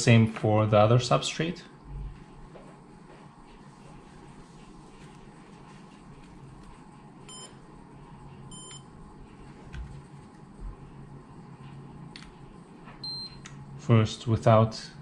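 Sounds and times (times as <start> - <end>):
gauge beeping: 7.3 - 7.6, 8.5 - 8.9, 13.0 - 13.4.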